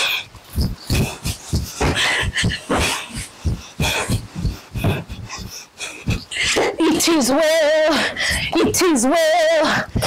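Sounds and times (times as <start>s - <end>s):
person breathing hard: 0.0s - 6.8s, 7.9s - 8.6s.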